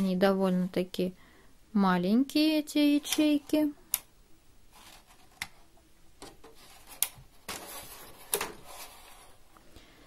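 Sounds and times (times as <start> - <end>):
plastic rustle and clatter: 6.2 - 9.4.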